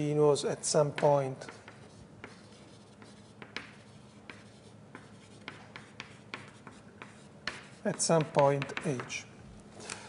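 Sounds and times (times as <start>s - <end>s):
writing strokes on a board: 0.8s - 9.2s.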